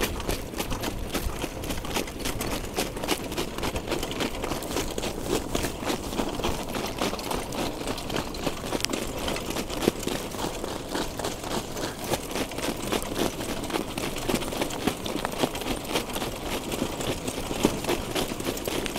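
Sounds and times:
horse cart rattling: 0:00.0 - 0:18.9.

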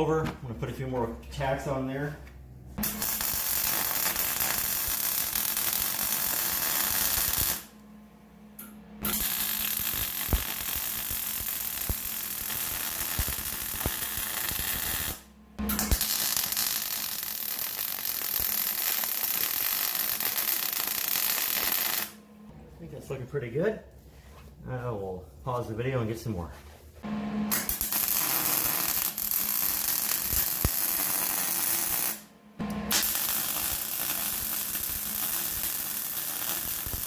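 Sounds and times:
welder arc running: 0:02.8 - 0:08.0, 0:08.6 - 0:22.5, 0:27.0 - 0:37.0.

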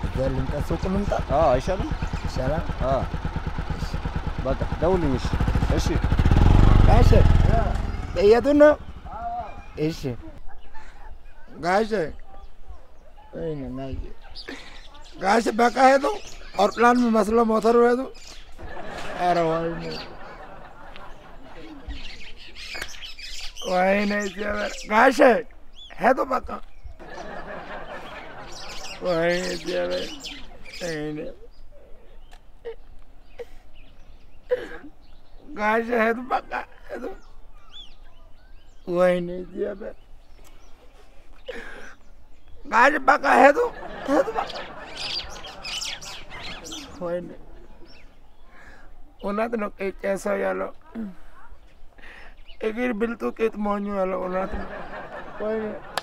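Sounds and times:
small birds chirping: 0:00.0 - 0:56.0
loud wordless vocal calls: 0:27.0 - 0:31.0, 0:42.7 - 0:48.6.

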